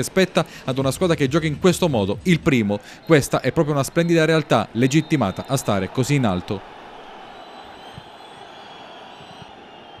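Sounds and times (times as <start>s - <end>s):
faint stadium crowd noise: 0.0s - 10.0s.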